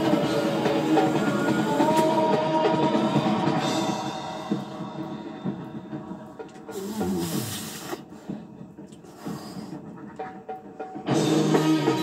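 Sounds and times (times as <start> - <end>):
music with drums: 0.0 - 12.0.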